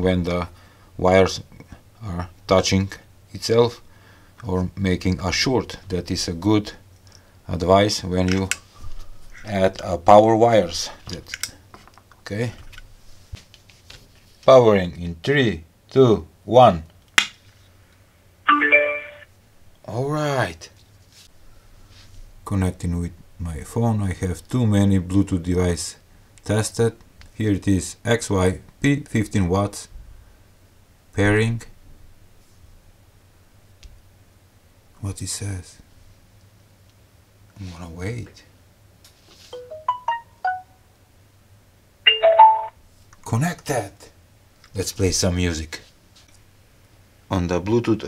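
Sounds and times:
electronic pairing chime: 18.5 - 19.2, 39.6 - 40.8, 42.1 - 42.7
electronic power-on chime: 42.1 - 42.7.

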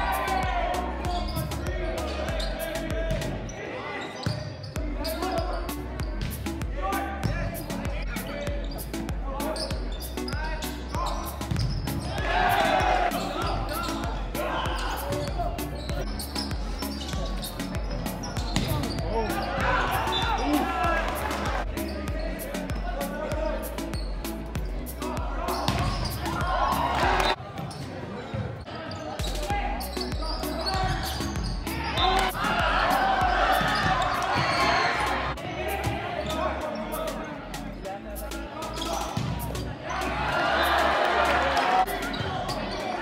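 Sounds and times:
background music: 0.0 - 3.6, 4.8 - 27.4, 29.2 - 43.0
players calling out: 0.0 - 27.4, 28.5 - 43.0
volleyball strikes: 25.6 - 27.4.

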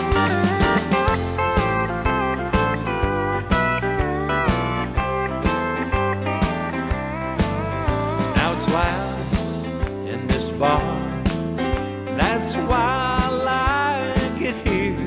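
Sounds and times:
country band instrumental: 0.0 - 15.0
steel guitar sliding lead: 0.0 - 15.0.

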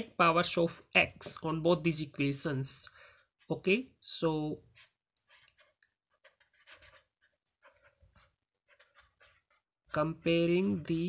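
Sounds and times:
pen writing on paper: 4.8 - 9.8.

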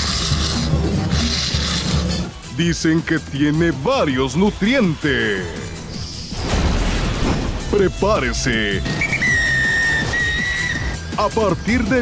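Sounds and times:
background music: 0.0 - 12.0
whistle long blast: 8.9 - 11.0.

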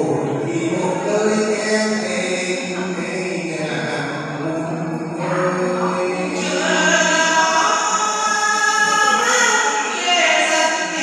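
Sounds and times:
man singing: 0.0 - 11.0
woman singing through microphone: 5.2 - 11.0.

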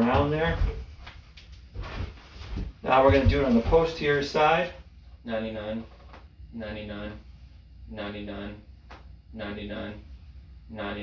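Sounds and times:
clothing rustling: 0.1 - 4.2
man speaking: 2.8 - 7.3, 7.9 - 8.7, 9.3 - 10.1, 10.7 - 11.0.

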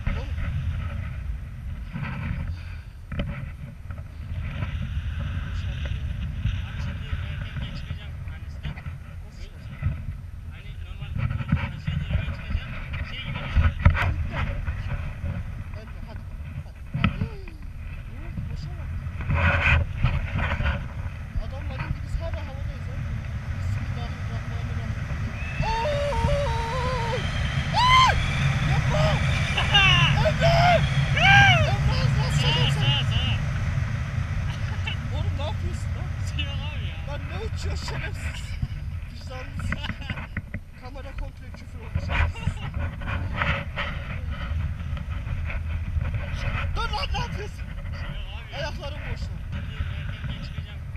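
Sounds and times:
wind buffeting microphone: 0.0 - 50.9
person shouting and whooping: 25.6 - 31.9.

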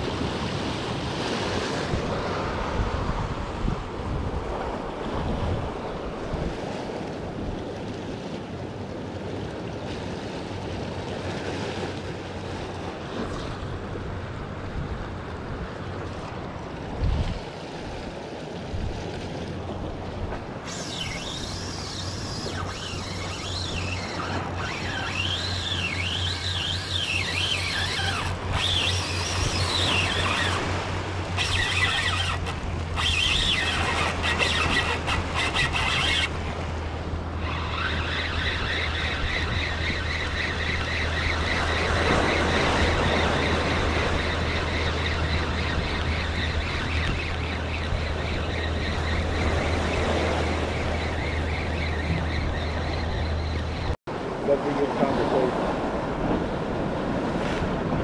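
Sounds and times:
high rising and falling squeal: 20.6 - 36.4, 37.4 - 54.0
fishing reel ticking: 20.6 - 54.0.

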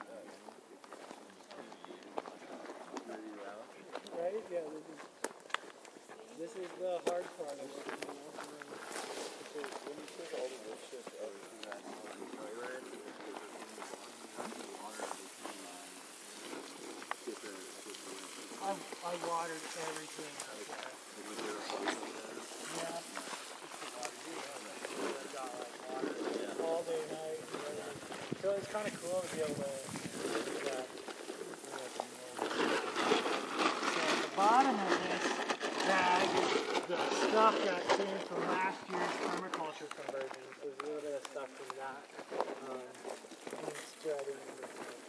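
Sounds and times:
people talking: 0.0 - 0.5, 1.1 - 5.0, 6.0 - 32.8, 33.8 - 45.0
garden hose spraying water: 6.4 - 35.2, 38.5 - 45.0.

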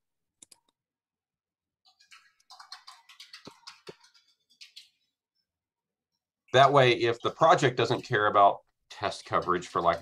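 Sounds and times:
typing on computer keyboard: 1.9 - 4.9.

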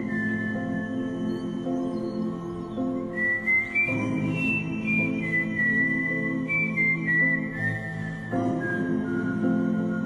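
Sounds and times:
soft background score: 0.0 - 10.0.

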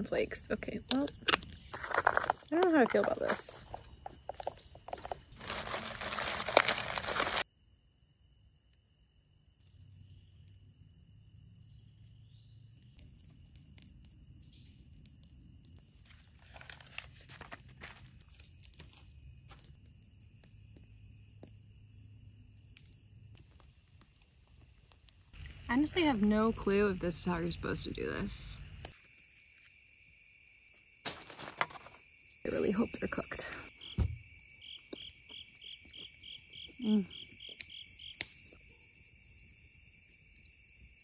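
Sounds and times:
campfire crackling: 0.0 - 7.5, 8.8 - 31.6, 33.6 - 40.4
crickets chirping: 0.0 - 41.0
foil and pouch crinkling: 4.4 - 7.4, 16.1 - 18.4
chickpeas poured onto foil: 5.3 - 7.4.

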